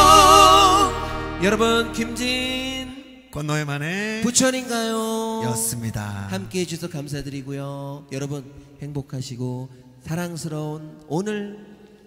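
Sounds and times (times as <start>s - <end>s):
man speaking into a microphone: 5.4s - 11.7s.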